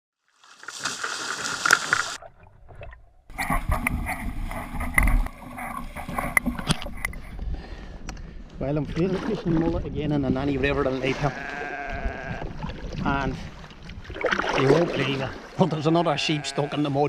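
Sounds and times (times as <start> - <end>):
water splashing beside kayak: 0.2 - 7.5, 8.8 - 15.9
wind buffeting microphone: 3.3 - 14.3.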